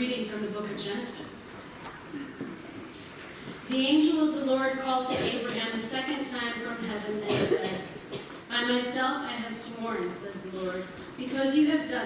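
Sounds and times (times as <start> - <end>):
woman reading aloud: 0.0 - 1.5, 3.7 - 12.0
person coughing: 5.1 - 5.8, 7.2 - 8.4.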